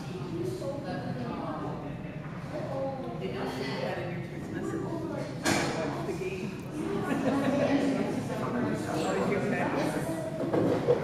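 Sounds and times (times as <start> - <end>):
noisy rumble of hall: 0.0 - 11.0.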